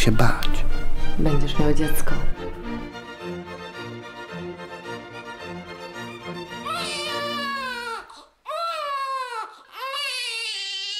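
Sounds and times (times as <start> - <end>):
background music: 0.0 - 7.9
baby crying: 6.5 - 10.9.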